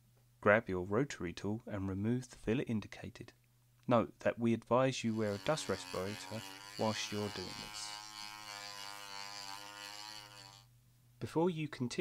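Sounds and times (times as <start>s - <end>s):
rotary tool sanding plastic: 5.1s - 10.7s.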